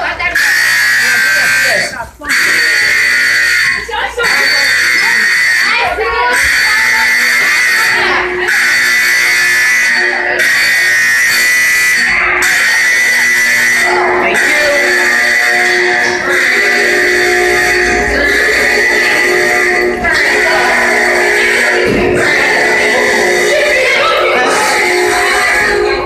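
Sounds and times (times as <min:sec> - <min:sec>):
fire alarm horns buzzing: 0:00.0 - 0:26.0.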